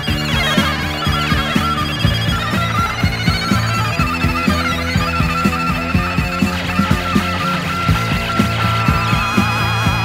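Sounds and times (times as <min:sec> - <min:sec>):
bass guitar: 0:00.0 - 0:10.0
high gliding lead line: 0:00.0 - 0:10.0
rock drums steady beat: 0:00.0 - 0:10.0.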